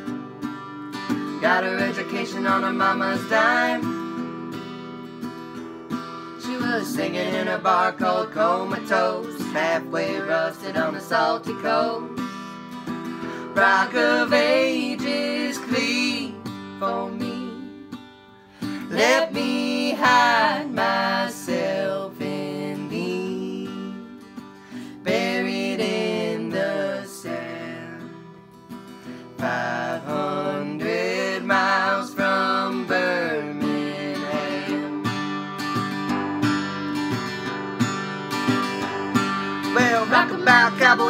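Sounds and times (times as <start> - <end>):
acoustic guitar strumming: 0.0 - 41.0
man and woman singing in harmony: 1.2 - 4.2, 6.4 - 18.0, 18.6 - 28.4, 29.1 - 35.2, 39.6 - 41.0.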